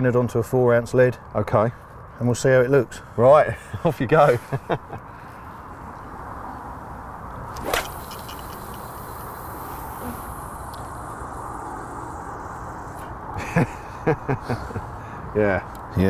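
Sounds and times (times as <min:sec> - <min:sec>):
fishing rod swish: 0:07.5 - 0:08.8
fishing line hissing out: 0:07.5 - 0:13.2.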